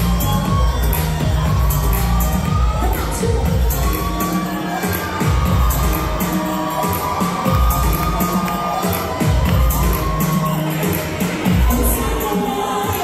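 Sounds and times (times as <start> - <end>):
audience cheering: 0.0 - 13.0
live pop music over pa: 0.0 - 13.0.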